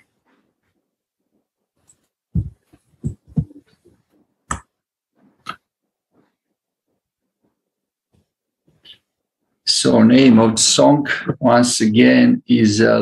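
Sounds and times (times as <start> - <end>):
short low thumps: 2.4 - 3.6.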